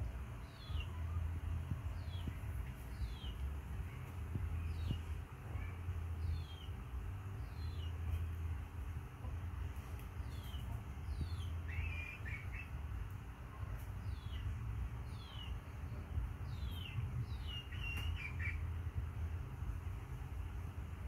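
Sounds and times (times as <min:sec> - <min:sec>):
small birds chirping: 0:00.0 - 0:21.0
steady low hum: 0:00.0 - 0:21.0.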